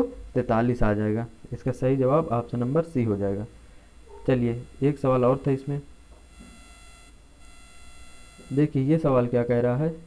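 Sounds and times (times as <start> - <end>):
faint high-pitched whine: 0.0 - 10.0
steady low hum: 0.0 - 10.0.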